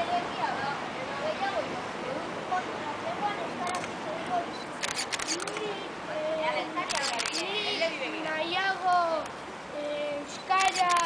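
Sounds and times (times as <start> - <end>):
crowd of children's voices: 0.0 - 11.0
sharp clicks: 3.6 - 4.0, 4.6 - 5.7, 6.9 - 7.5, 10.4 - 11.0.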